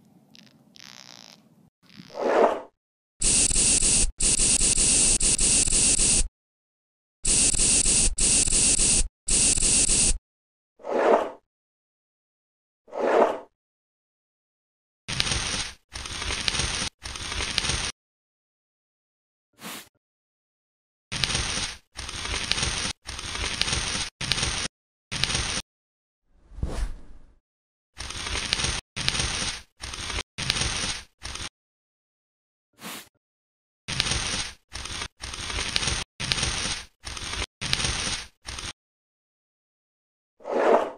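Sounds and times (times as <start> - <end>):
scalpel scraping skin: 0.3 - 2.2
aerosol spray can hissing: 3.2 - 6.3, 7.2 - 10.2.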